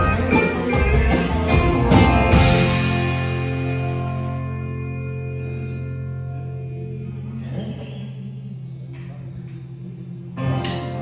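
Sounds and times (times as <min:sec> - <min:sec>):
guitar strumming a chord: 0:00.0 - 0:07.0
country band chord ringing: 0:00.0 - 0:07.3.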